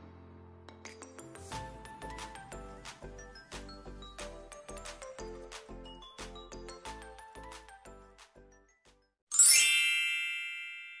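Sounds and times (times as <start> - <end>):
bright chime ringing: 9.3 - 11.0.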